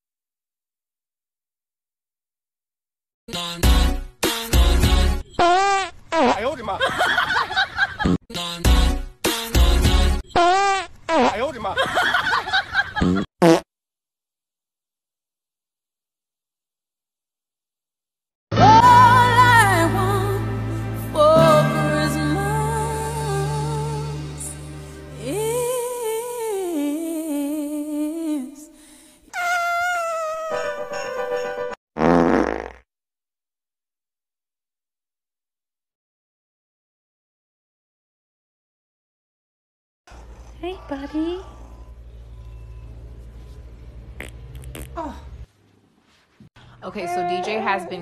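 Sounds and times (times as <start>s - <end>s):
dog farting: 13.0s - 13.7s, 32.0s - 32.8s, 44.2s - 45.2s.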